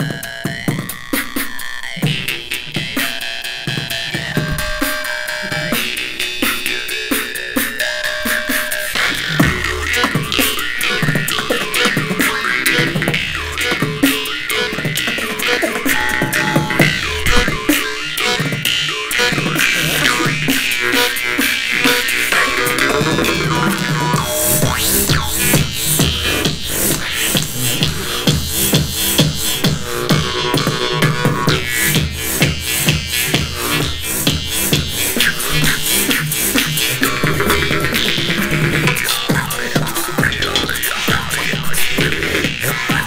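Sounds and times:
beatboxing: 0.0s - 43.0s
jaw harps twanging: 0.5s - 43.0s.

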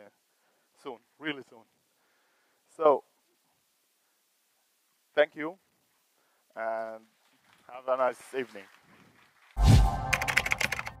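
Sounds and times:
keyboard typing clicks: 10.0s - 11.0s.

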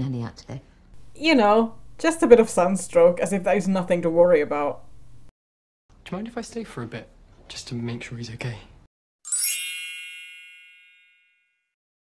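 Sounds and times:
bell-like metallic ding: 9.3s - 11.7s.

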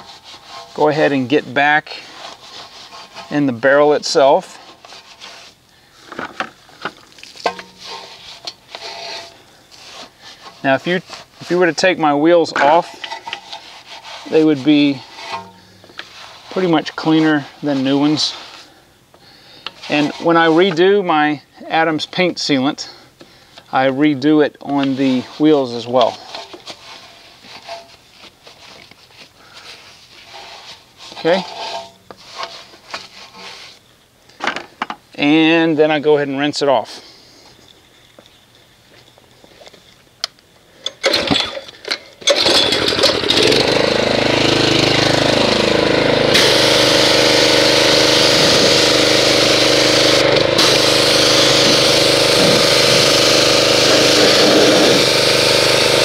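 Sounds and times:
brush scrubbing wet wheel: 0.0s - 5.7s, 6.9s - 18.8s, 19.8s - 21.0s, 24.8s - 33.9s, 43.8s - 56.0s.

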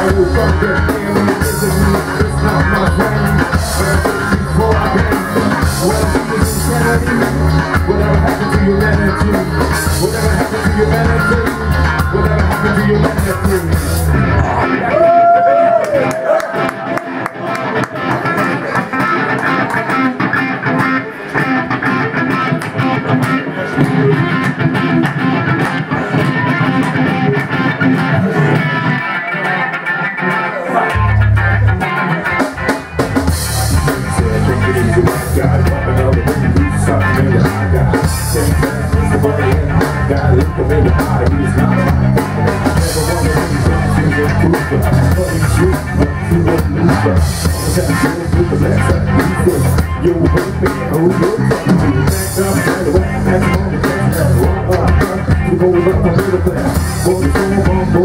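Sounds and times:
drums: 0.0s - 58.0s
electric guitars: 0.0s - 58.0s
heavy bass guitar: 0.0s - 58.0s.

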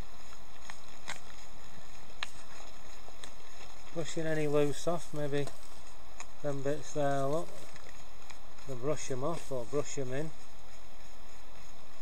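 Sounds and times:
background hiss: 0.0s - 12.0s
brush sweeping stone wall: 1.8s - 12.0s.

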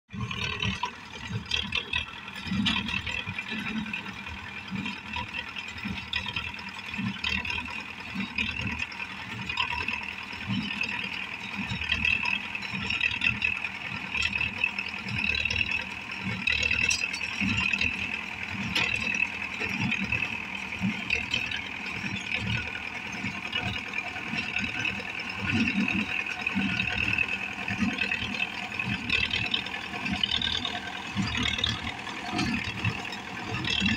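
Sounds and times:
tractor diesel engine under load: 0.0s - 33.9s
baler mechanism clattering: 15.4s - 23.3s.

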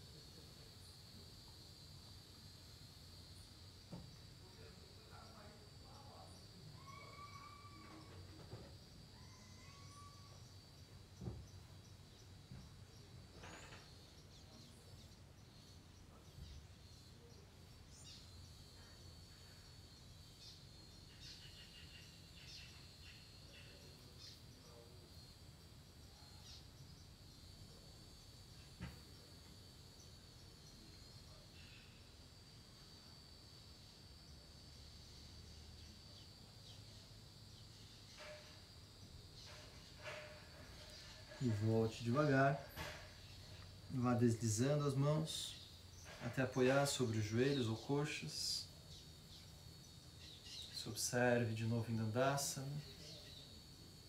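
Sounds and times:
bird chirps: 9.2s - 25.3s, 48.9s - 50.9s.

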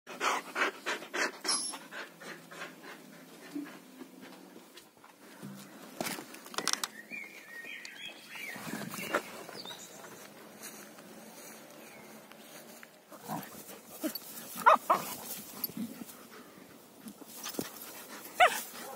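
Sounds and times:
dog panting rapidly: 0.1s - 4.4s.

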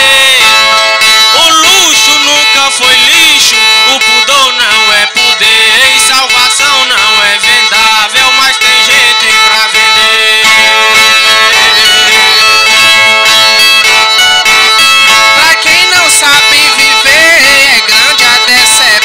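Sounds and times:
viola strings playing melody: 0.0s - 19.0s.

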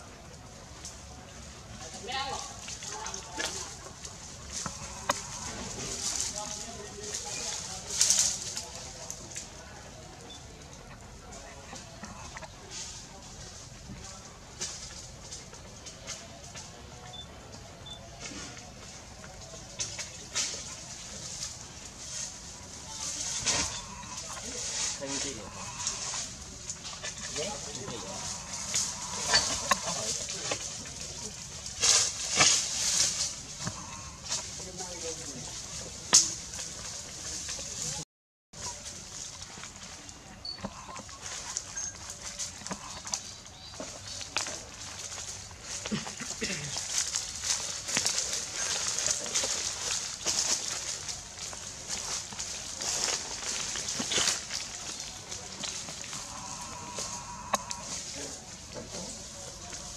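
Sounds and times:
dry leaves rustling and crackling: 0.0s - 38.0s, 38.6s - 59.9s
faint calls: 22.8s - 34.6s, 51.1s - 59.7s.

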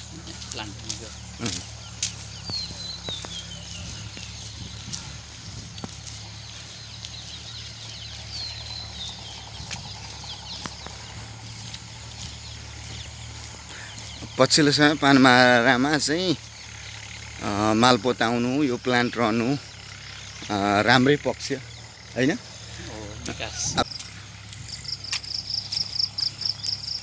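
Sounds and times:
footsteps on brick paving: 0.0s - 19.1s, 20.0s - 27.0s
bird calling: 0.0s - 27.0s
low machinery hum: 0.0s - 27.0s.

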